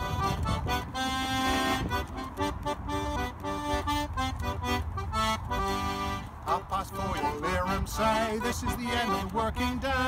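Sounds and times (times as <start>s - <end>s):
button accordion playing folk melody: 0.0s - 10.0s.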